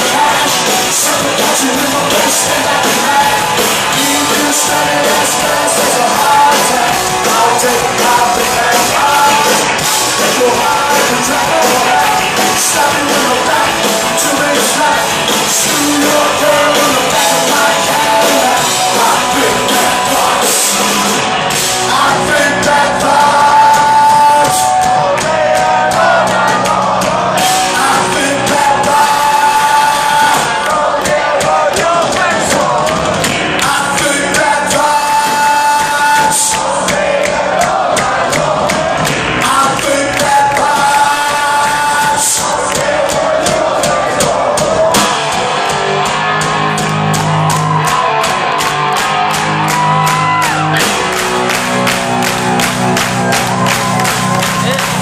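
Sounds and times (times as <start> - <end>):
heavy bass guitar: 0.0 - 55.0
rock band playing live: 0.0 - 55.0.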